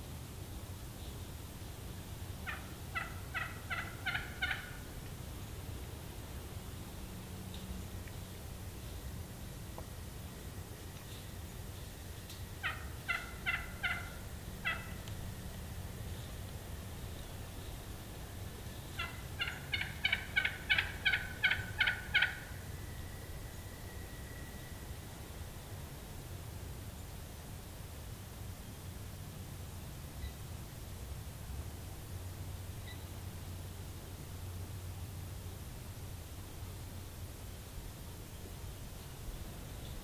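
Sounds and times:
turkey yelps: 2.4s - 4.8s, 12.6s - 15.1s, 19.0s - 22.6s.

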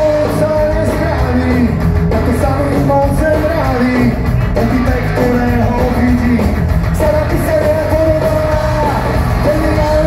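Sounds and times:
live punk rock band: 0.0s - 10.0s.

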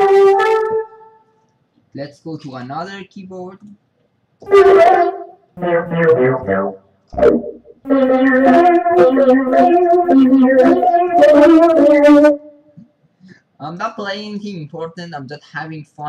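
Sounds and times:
synthesizer notes and chords: 4.4s - 12.6s.

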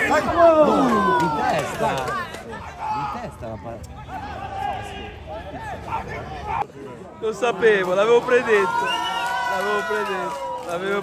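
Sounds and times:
spectators talking and calling out: 0.0s - 11.0s.

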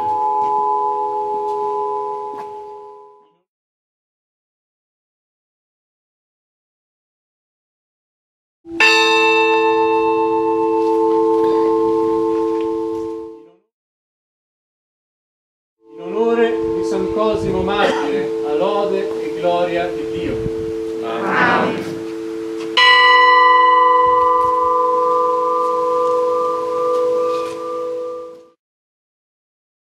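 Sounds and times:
church bell ringing: 8.7s - 13.3s, 22.0s - 28.2s.

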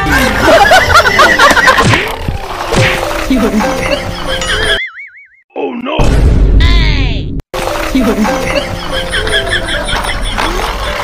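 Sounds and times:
background music: 0.0s - 4.8s, 7.6s - 11.0s.

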